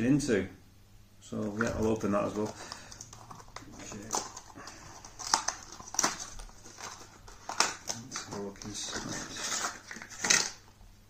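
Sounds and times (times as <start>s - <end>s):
packaging crinkling: 1.4s - 10.8s
packaging snapping and clicking: 1.5s - 10.8s.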